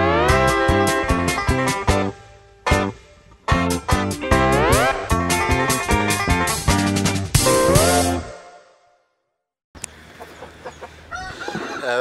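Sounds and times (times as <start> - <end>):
chickens clucking: 9.9 - 12.0.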